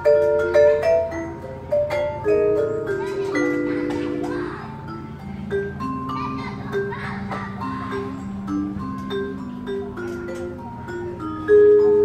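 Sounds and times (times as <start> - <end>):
vibraphone melody: 0.0 - 12.0.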